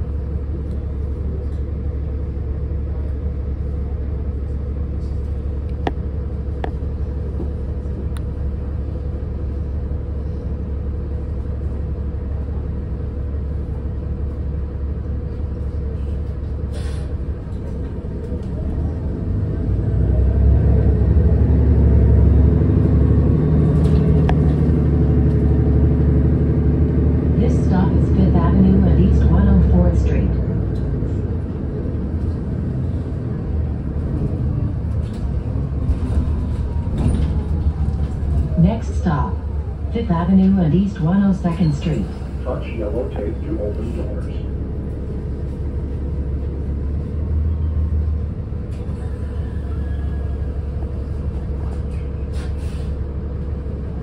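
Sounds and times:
bus engine humming: 0.0s - 54.0s.

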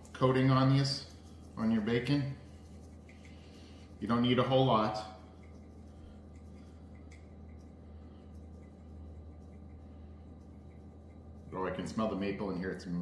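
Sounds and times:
shaker ticking and tapping: 0.0s - 13.0s
steady low hum: 0.0s - 13.0s.

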